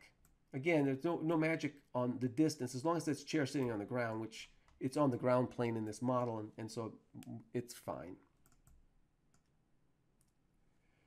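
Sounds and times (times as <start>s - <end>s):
computer mouse clicks: 8.4s - 9.6s.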